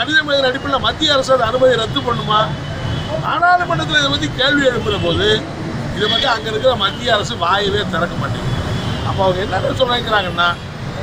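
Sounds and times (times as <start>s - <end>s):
man speaking: 0.0s - 10.6s.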